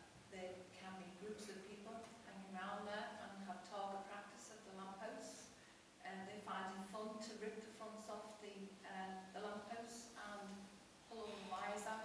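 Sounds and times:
woman talking: 0:00.4 - 0:12.0.

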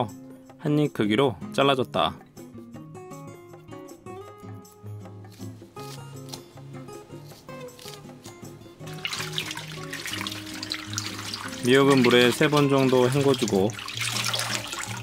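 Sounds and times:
background music: 0:00.0 - 0:15.0
scissors snipping: 0:05.2 - 0:08.5
water splashing in a steel bowl: 0:08.8 - 0:15.0.

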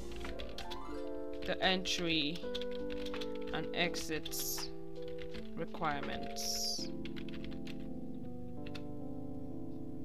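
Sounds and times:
background music with held chords: 0:00.0 - 0:10.0.

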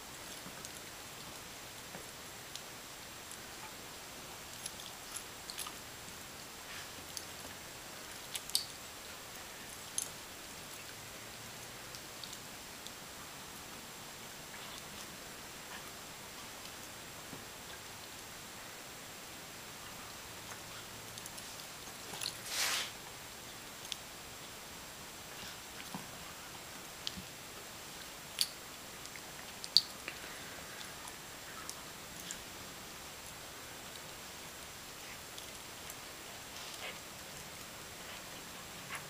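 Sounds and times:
steady hiss: 0:00.0 - 0:39.0.

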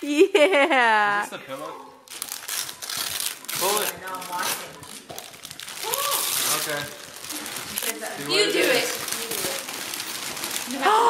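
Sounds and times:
wrapping paper crinkling: 0:02.0 - 0:11.0.

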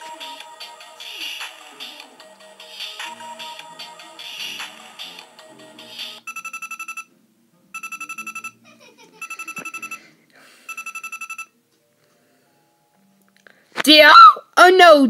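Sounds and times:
trilling electronic ringing: 0:07.8 - 0:08.6, 0:09.2 - 0:10.0, 0:10.7 - 0:11.5.

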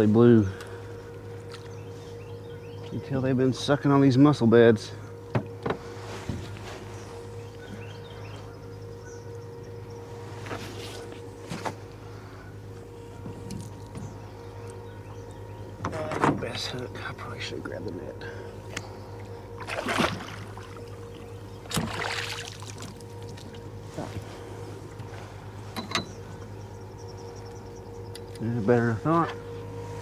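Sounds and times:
steady low hum: 0:00.0 - 0:30.0
fish splashing into water: 0:19.6 - 0:20.9, 0:21.6 - 0:23.6.

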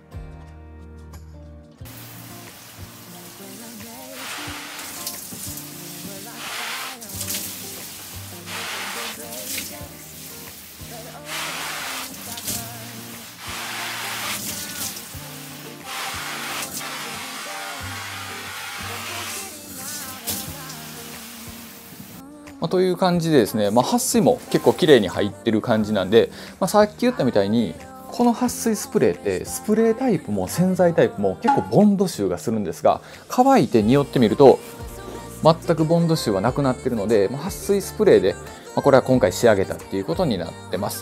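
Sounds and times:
background music: 0:00.0 - 0:41.0
water spray hissing: 0:01.9 - 0:22.2.

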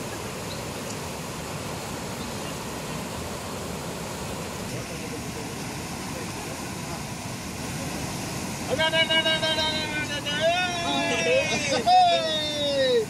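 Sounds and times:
floodwater rushing: 0:00.0 - 0:13.0.

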